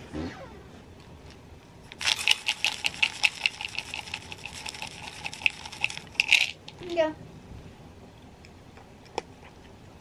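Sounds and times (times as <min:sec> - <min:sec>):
cat crunching food: 0:01.0 - 0:06.8.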